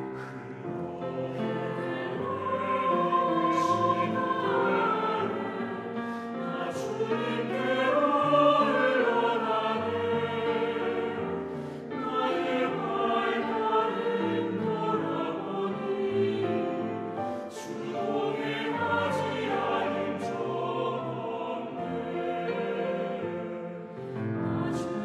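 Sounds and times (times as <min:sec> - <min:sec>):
mixed choir singing: 0:00.0 - 0:25.0
piano accompaniment: 0:00.0 - 0:25.0.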